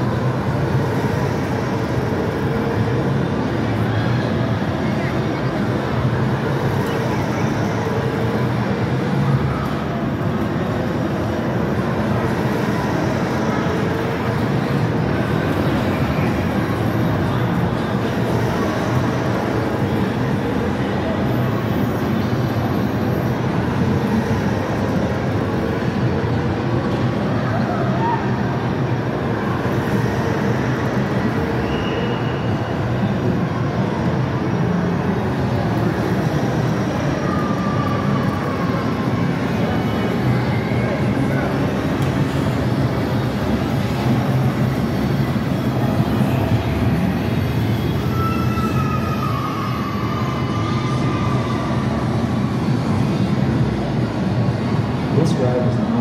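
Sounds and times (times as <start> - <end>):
ride vehicle rumbling on track: 0.0 - 56.0.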